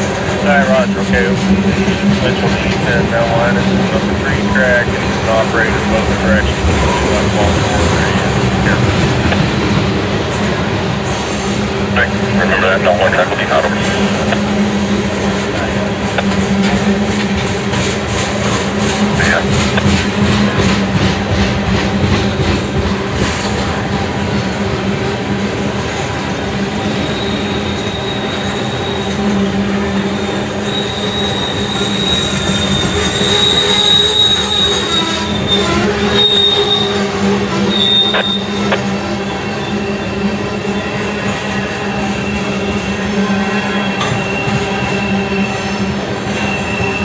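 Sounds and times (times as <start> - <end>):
freight train rumble: 0.0 - 47.0
high wheel squeal: 26.8 - 47.0.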